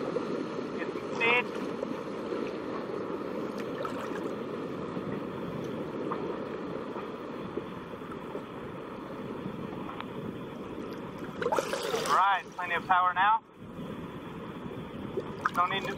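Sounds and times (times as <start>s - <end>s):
shallow water rushing: 0.0s - 15.9s
wind on microphone: 0.0s - 15.9s.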